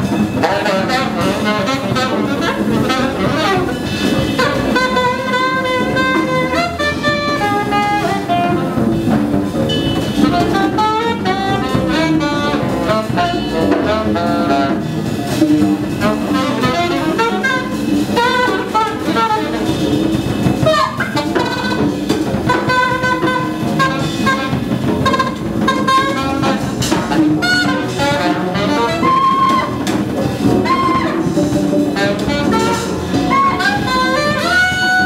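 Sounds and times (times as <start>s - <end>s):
drum kit: 0.0s - 35.0s
saxophone melody: 0.0s - 35.0s
upright double bass: 0.0s - 35.0s.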